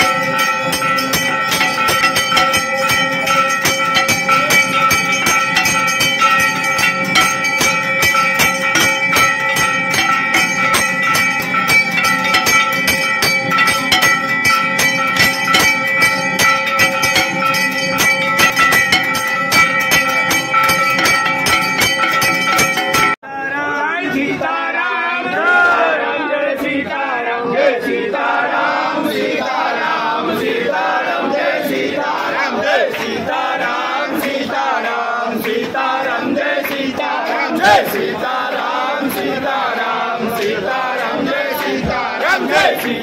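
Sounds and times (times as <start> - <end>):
temple bells clanging rapidly: 0.0 - 23.2, 29.6 - 43.0.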